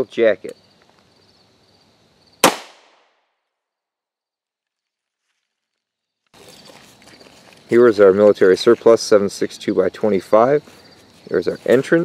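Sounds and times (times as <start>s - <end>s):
faint insect chirring: 0.0s - 2.4s, 3.6s - 12.0s
pistol shot with echo: 2.4s - 3.1s.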